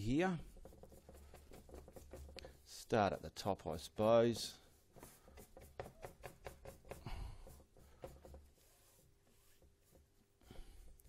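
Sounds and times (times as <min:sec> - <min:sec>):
brush strokes on canvas: 0:00.0 - 0:11.0.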